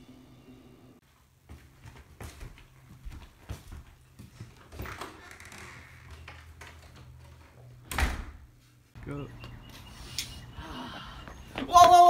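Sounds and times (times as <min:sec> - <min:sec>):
front door opening and shutting: 0:04.5 - 0:08.5
door banging shut: 0:07.9 - 0:08.5.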